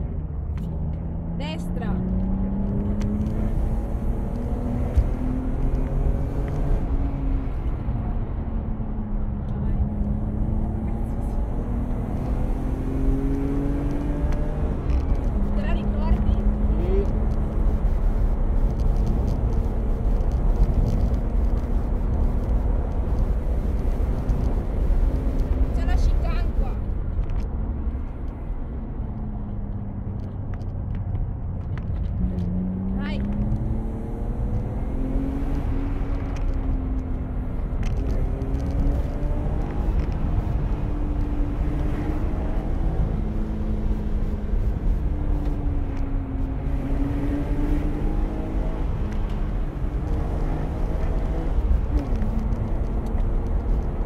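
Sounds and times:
car engine accelerating: 0:00.0 - 0:54.0
road noise: 0:00.0 - 0:54.0.

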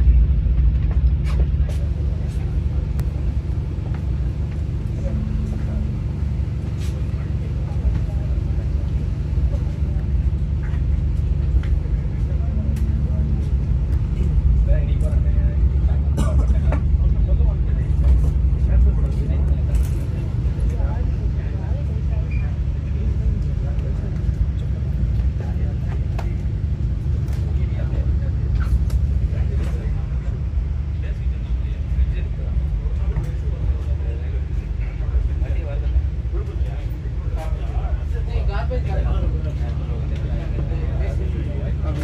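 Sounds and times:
indistinct passenger voices: 0:00.0 - 0:42.0
train interior rumble: 0:00.0 - 0:42.0.

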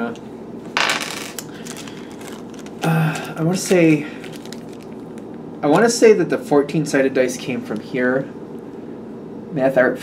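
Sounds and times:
dice clattering on table: 0:00.8 - 0:02.7.

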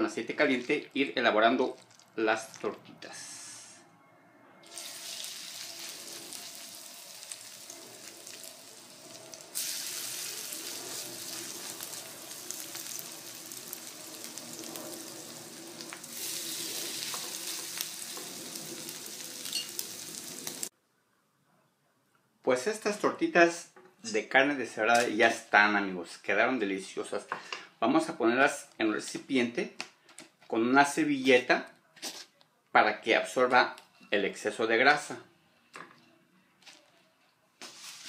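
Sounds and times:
patties sizzling in oil: 0:04.6 - 0:20.7.

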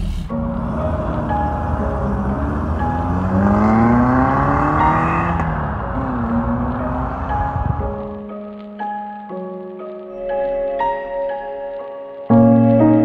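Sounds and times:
car engine accelerating: 0:00.0 - 0:08.3
background music: 0:00.0 - 0:13.0.

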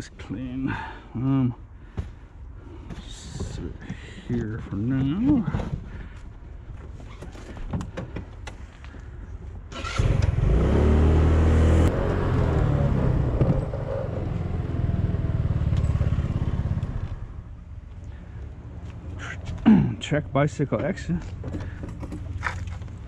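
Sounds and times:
scooter engine accelerating: 0:09.8 - 0:17.4.

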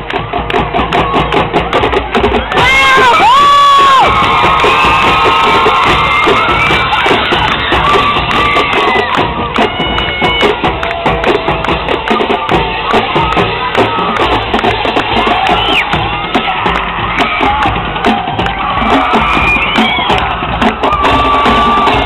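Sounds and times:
crowd cheering: 0:00.0 - 0:22.0
drum hits: 0:00.0 - 0:22.0
marching band playing: 0:00.0 - 0:22.0.

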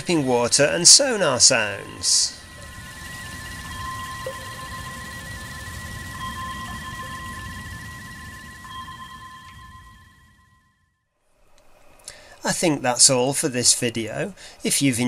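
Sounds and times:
fast electronic pulsing: 0:00.0 - 0:10.5
sonar ping tone: 0:00.0 - 0:10.9
low rumble: 0:00.5 - 0:10.7.

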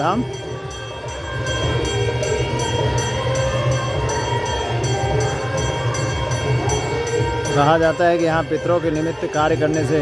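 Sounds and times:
temple bells struck rhythmically: 0:00.0 - 0:10.0.

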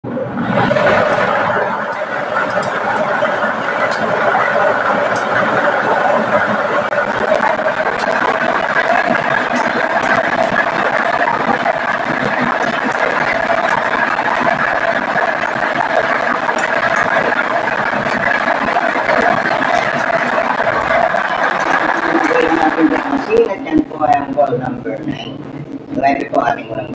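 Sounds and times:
steady rush of air: 0:00.0 - 0:26.0.

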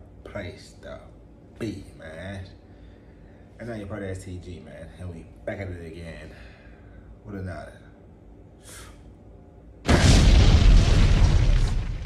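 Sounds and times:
explosion boom and rumble: 0:09.9 - 0:12.0.

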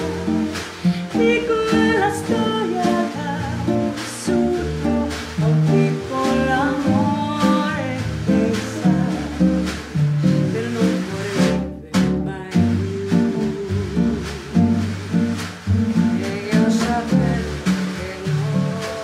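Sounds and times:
electric bass: 0:00.0 - 0:19.0
nylon-string acoustic guitar: 0:00.0 - 0:19.0
snare drum: 0:00.0 - 0:19.0
woman singing: 0:00.0 - 0:19.0.

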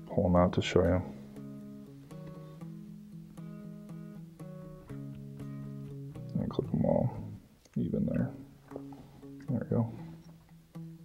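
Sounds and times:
acoustic guitar picking: 0:00.0 - 0:11.0.

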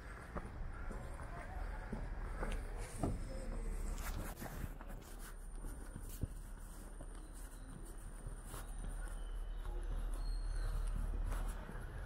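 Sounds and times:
footsteps on wet pavement: 0:00.0 - 0:12.0.

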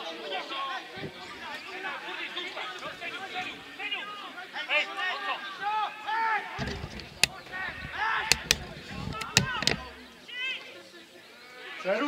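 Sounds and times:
sharp knocks: 0:06.6 - 0:10.0.

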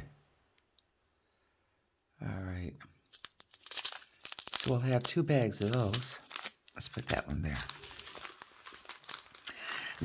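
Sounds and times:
plastic bags crinkling: 0:03.1 - 0:10.0.

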